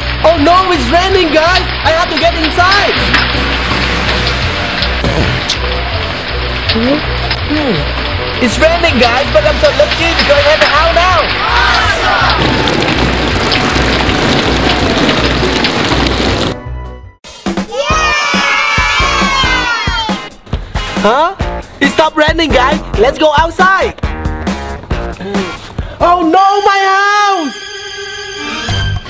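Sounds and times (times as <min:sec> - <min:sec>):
pouring rain hiss: 0:00.0 - 0:16.6
children cheering yay: 0:11.4 - 0:12.9, 0:17.7 - 0:20.3
sliding rising and falling tones: 0:11.5 - 0:16.6
background music with steady beat: 0:16.6 - 0:26.3
music with low bass beat: 0:22.3 - 0:25.7.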